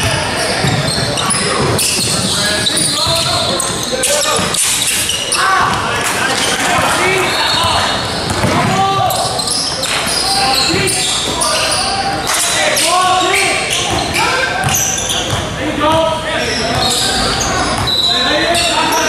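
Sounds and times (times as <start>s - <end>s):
indistinct echoing voices: 0.0s - 19.0s.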